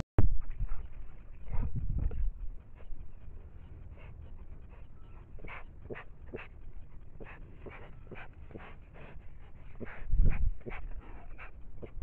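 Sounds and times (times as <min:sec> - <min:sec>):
bear sniffing and huffing: 0:00.5 - 0:12.0
animal bumping camera: 0:05.1 - 0:10.0.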